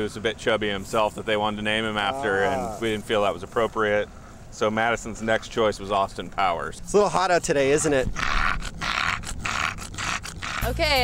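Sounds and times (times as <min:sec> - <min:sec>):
dog panting: 0:07.7 - 0:11.0.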